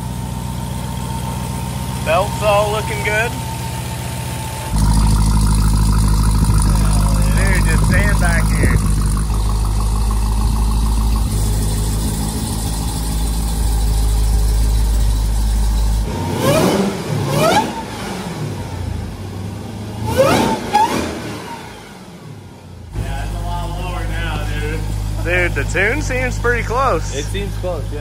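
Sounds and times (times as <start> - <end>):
car engine idling: 0.0 - 20.2, 21.8 - 28.0
engine revving blips: 4.7 - 19.0, 20.0 - 23.4.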